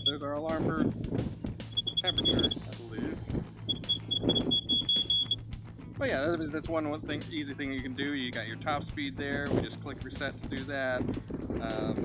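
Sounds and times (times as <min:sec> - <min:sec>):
rapid high-pitched alarm beeps: 0:00.0 - 0:00.2, 0:01.7 - 0:02.6, 0:03.7 - 0:05.4.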